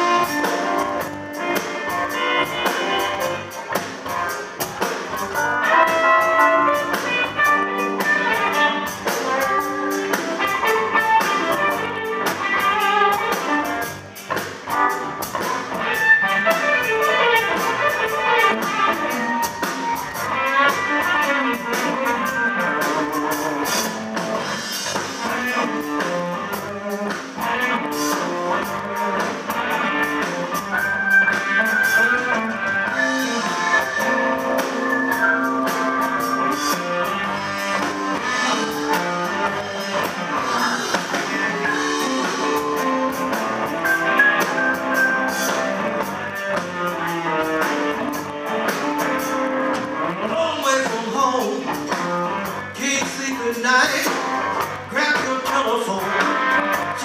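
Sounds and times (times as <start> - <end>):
bass guitar: 0.0 - 57.0
drum kit: 0.0 - 57.0
electric guitars playing blues: 0.0 - 57.0.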